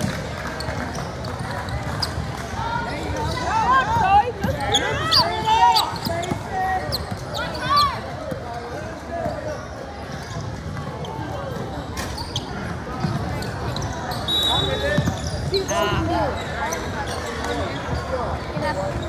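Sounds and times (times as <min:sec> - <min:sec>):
spectators' voices: 0:00.0 - 0:19.0.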